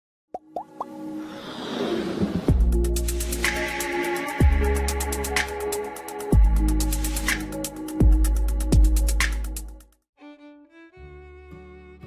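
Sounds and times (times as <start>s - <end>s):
whoosh: 1.2s - 3.5s.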